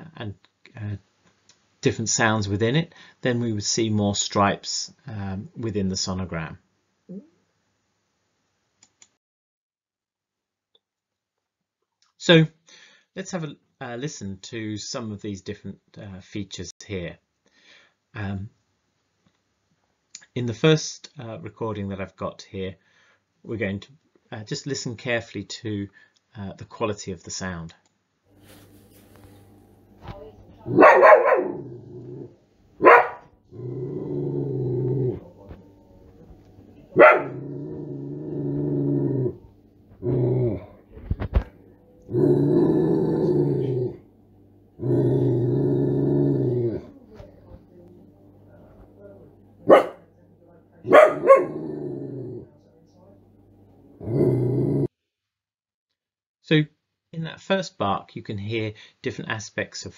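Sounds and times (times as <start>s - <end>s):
dog barking: 30.6s - 31.7s, 32.8s - 33.3s, 36.9s - 37.5s, 49.7s - 50.1s, 50.9s - 51.7s
dog growling: 30.6s - 36.1s, 36.9s - 41.2s, 42.0s - 44.1s, 44.8s - 47.0s, 50.9s - 52.5s, 54.0s - 54.9s.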